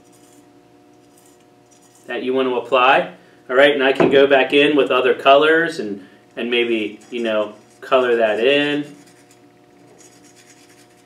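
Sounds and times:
low steady hum: 0.0s - 11.0s
needle tip scratching clay: 6.6s - 11.0s.

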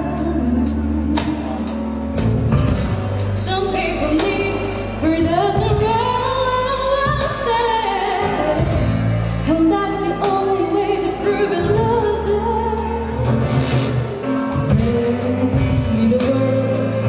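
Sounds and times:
woman singing a pop ballad: 0.0s - 1.9s, 3.4s - 13.2s, 14.6s - 17.0s
accompaniment with bass and percussion: 0.0s - 17.0s.

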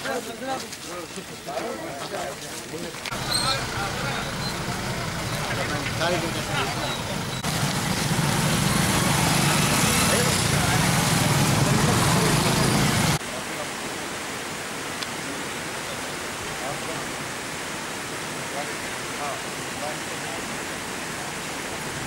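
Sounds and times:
crowd voices: 0.0s - 13.2s
outdoor hiss: 0.0s - 22.0s
small motorcycles engine hum: 3.1s - 13.2s.

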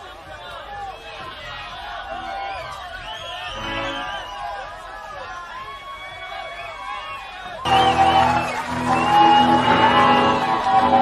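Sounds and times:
rock band electric guitars ringing: 7.7s - 11.0s.

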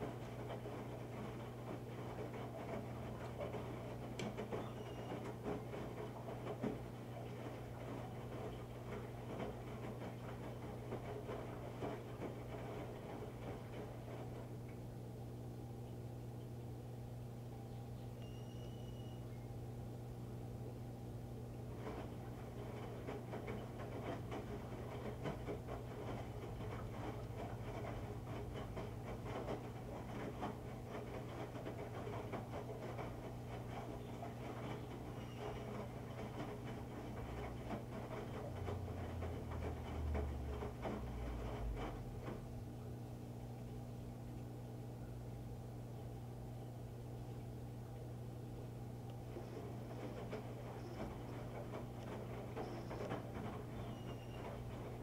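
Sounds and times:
laundry sloshing in washer drum: 0.0s - 15.2s, 21.3s - 44.3s, 45.4s - 55.0s
washer motor hum: 0.0s - 55.0s.

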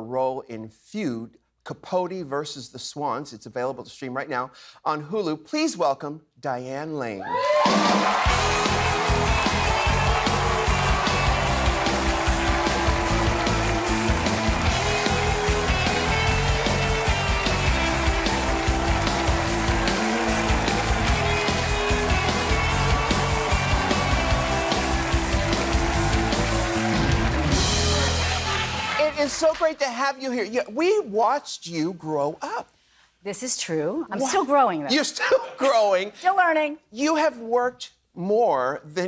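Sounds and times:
band playing upbeat music: 7.5s - 29.8s.

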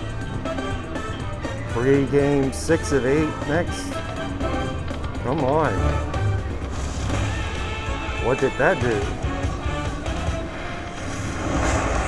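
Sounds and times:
slot machine electronic music: 0.0s - 11.6s.

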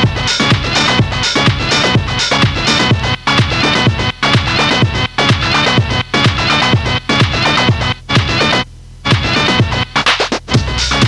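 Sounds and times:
pounding kick drum: 0.0s - 8.5s, 9.1s - 11.0s
electronic dance track: 0.0s - 11.0s
heavy bass line: 0.0s - 11.0s.

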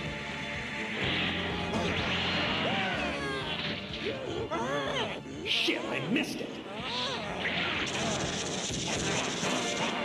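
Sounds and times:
background music: 0.0s - 10.0s
wordless vocal cries: 2.6s - 7.4s.

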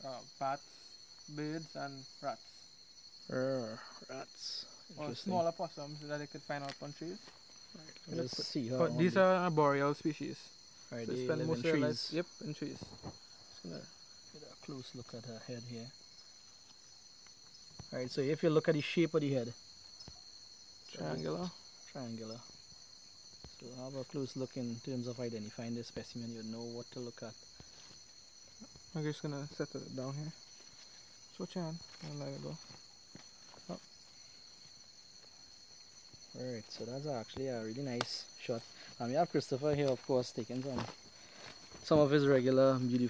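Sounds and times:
insects droning: 0.0s - 43.0s.

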